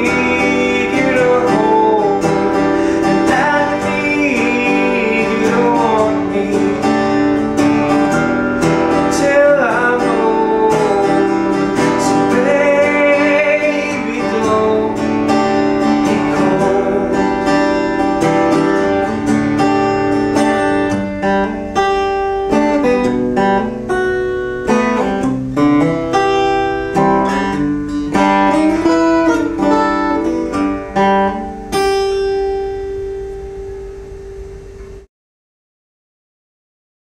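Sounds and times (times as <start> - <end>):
solo acoustic guitar: 0.0 - 35.1.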